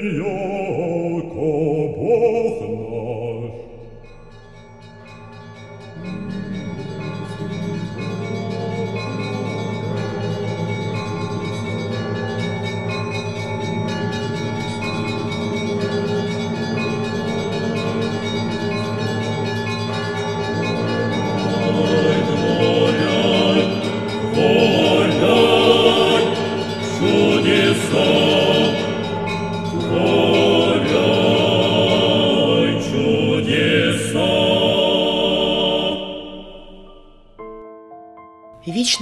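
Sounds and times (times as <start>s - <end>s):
church bells pealing: 3.8s - 37.7s.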